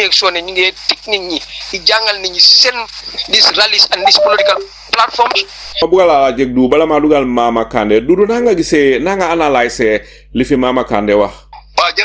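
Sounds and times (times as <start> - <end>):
man speaking: 0.0 - 12.0
steady high-pitched hiss: 0.0 - 12.0.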